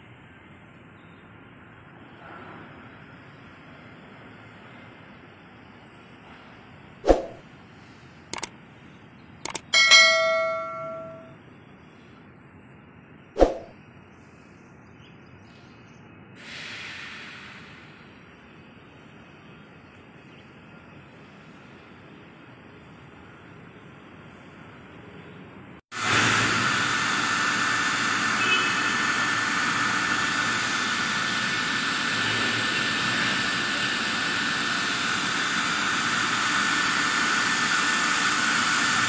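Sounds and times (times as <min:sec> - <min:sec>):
brief hiss: 0:16.4 - 0:18.2.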